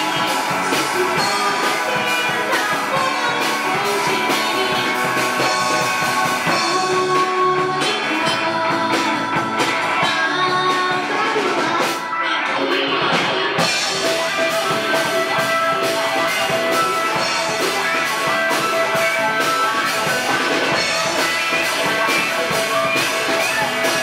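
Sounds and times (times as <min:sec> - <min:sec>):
drum kit: 0:00.0 - 0:24.0
electric guitar: 0:00.0 - 0:24.0
keyboard: 0:00.0 - 0:24.0
woman singing: 0:00.0 - 0:24.0.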